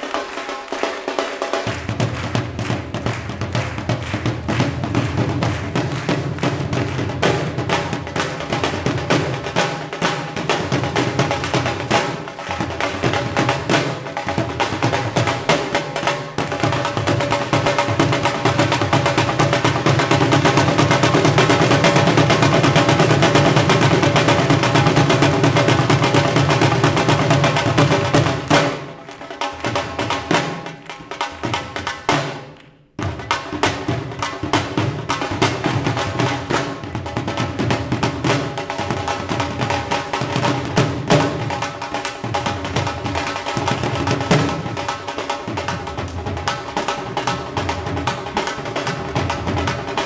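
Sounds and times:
barrel drums played with sticks: 0.0 - 50.0.

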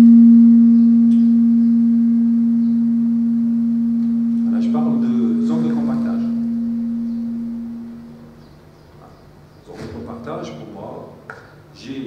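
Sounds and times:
microphone feedback tone: 0.0 - 10.3
person speaking: 4.4 - 6.6.

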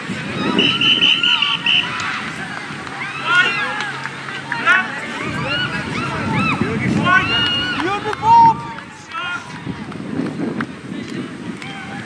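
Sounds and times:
voices shouting and calling out: 0.0 - 12.0
loud held shout: 0.3 - 9.7.

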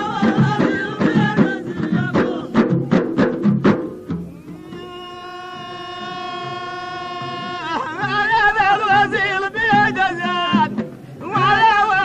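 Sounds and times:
man singing folk song: 0.0 - 3.0, 4.4 - 12.0.

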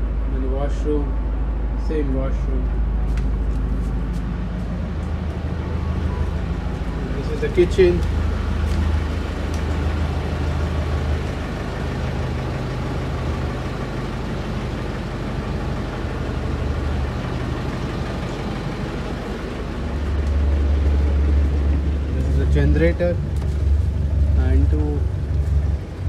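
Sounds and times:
generator engine humming: 0.0 - 26.0.

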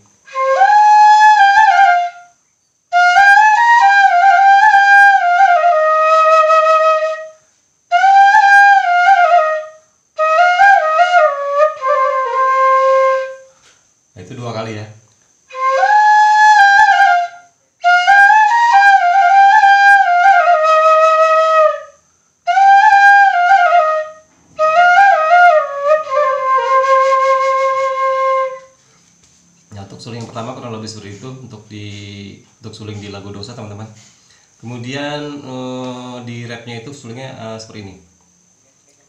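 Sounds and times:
bamboo flute melody: 0.2 - 13.5, 15.5 - 28.8
person speaking: 29.7 - 34.0.

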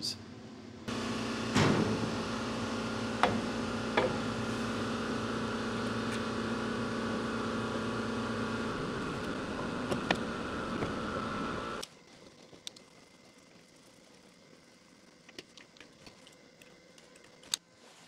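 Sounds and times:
machine hum: 0.0 - 11.8.

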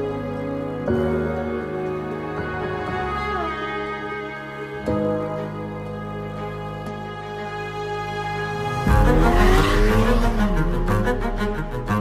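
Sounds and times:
orchestral music: 0.0 - 12.0
car engine revving: 8.8 - 12.0.

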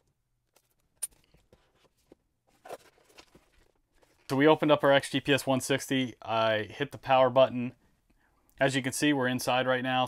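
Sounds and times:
cardboard scraping and rustling: 1.4 - 4.3.

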